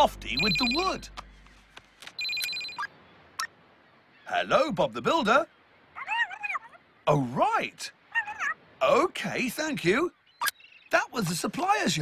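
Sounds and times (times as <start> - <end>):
telephone ringing: 0.3 - 1.1, 2.2 - 2.9.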